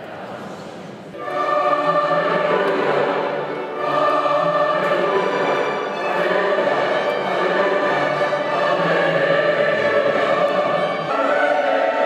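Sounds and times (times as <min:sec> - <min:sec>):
church choir singing: 0:01.1 - 0:12.0.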